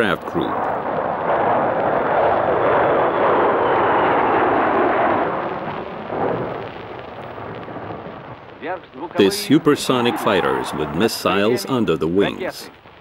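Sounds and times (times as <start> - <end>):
jet aircraft flying overhead: 0.0 - 12.7.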